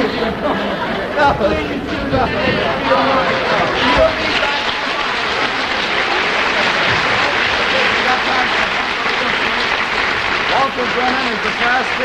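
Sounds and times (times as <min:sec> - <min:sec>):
audience applauding: 0:02.0 - 0:12.0.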